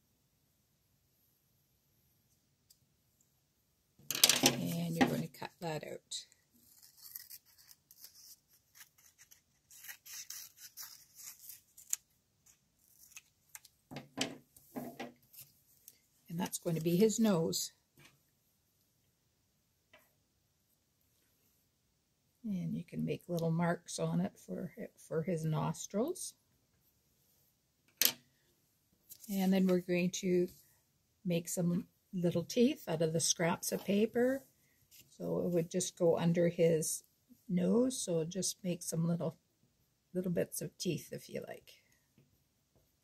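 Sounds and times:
scissors snipping paper: 6.6 - 13.7.

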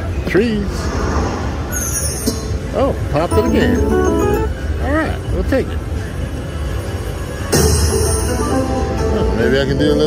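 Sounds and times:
slot machine game music: 3.3 - 5.3
slot machine sound effects: 3.3 - 5.3.

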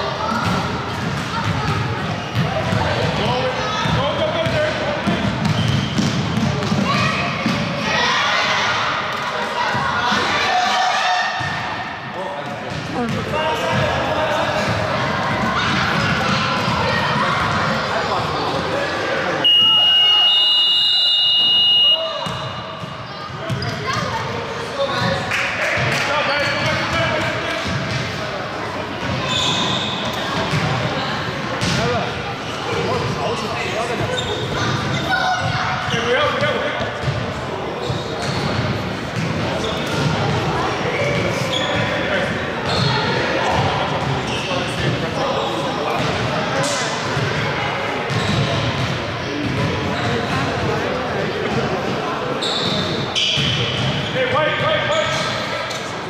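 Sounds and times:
basketballs bouncing on court: 0.2 - 7.8, 12.4 - 18.0, 21.4 - 25.2, 25.8 - 28.2, 28.9 - 32.0, 33.9 - 42.0, 47.1 - 50.8, 53.2 - 54.1
scoreboard buzzer: 19.4 - 22.0.

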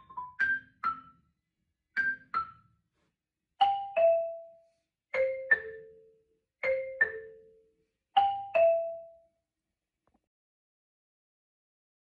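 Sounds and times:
marimba notes: 3.6 - 7.6, 8.2 - 9.3.

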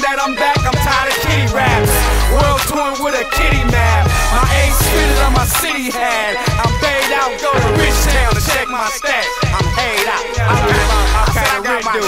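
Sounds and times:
rapping over a beat: 0.0 - 12.0
deep bass notes: 1.2 - 2.6, 3.4 - 5.6, 7.6 - 8.5, 10.4 - 11.4.

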